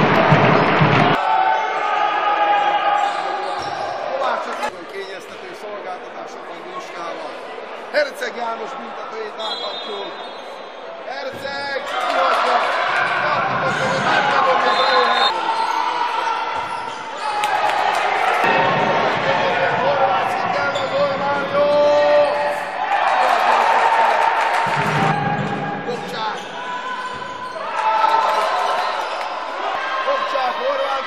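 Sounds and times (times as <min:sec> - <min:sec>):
voices in a hall: 0:01.1 - 0:31.0.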